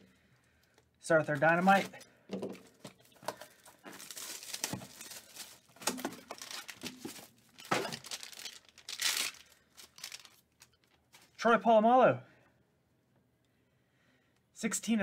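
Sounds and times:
plastic wrap tearing and crinkling: 3.0s - 11.3s.

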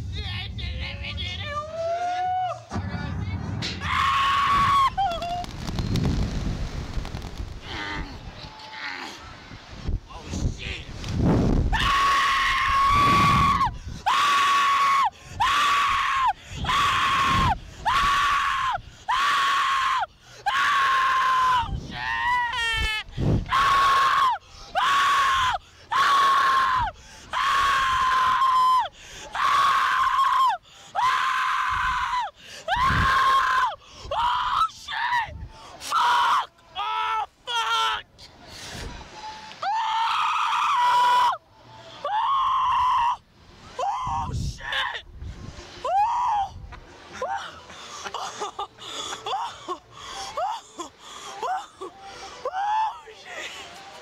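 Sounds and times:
wind noise on microphone: 2.8s - 8.5s, 9.3s - 14.1s, 16.5s - 19.0s, 21.6s - 22.1s, 22.7s - 23.8s, 32.8s - 33.1s, 35.2s - 35.6s, 44.0s - 46.9s.

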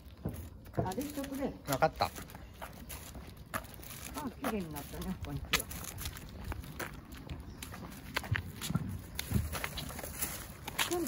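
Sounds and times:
footsteps on asphalt: 0.0s - 11.0s.

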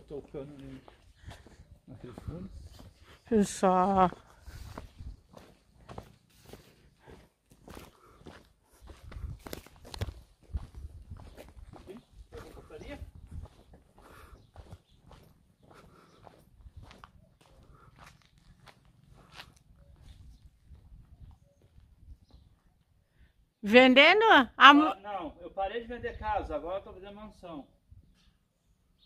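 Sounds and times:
footsteps on cobblestones: 4.0s - 12.6s, 13.3s - 22.5s.

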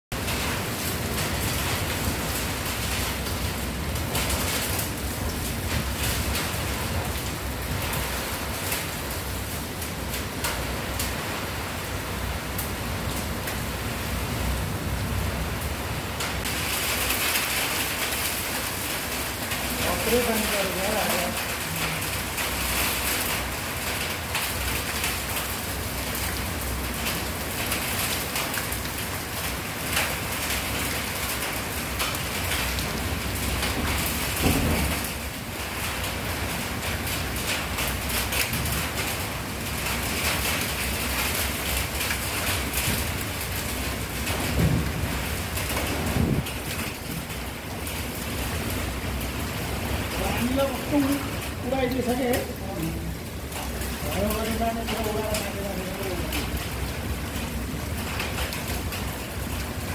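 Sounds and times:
heavy rain falling: 0.1s - 59.9s
wind: 0.1s - 59.9s.

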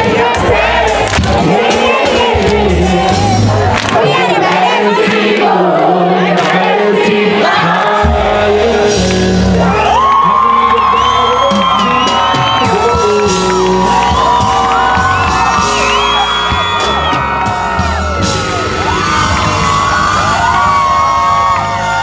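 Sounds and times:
live band music with bass beat: 0.0s - 4.2s, 7.9s - 22.0s
crowd cheering and whooping: 7.5s - 22.0s.

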